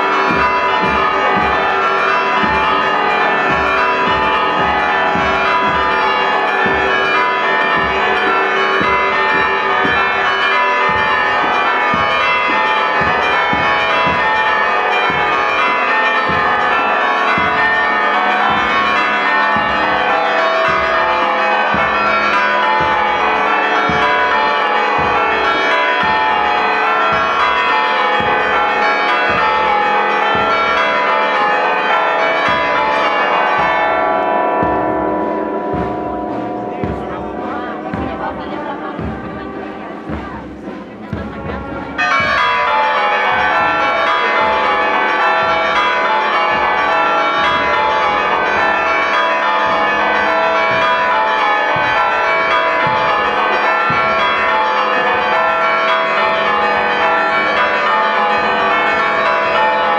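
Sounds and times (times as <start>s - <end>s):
bass drum beats: 0.0s - 59.6s
church bells ringing: 0.0s - 59.9s.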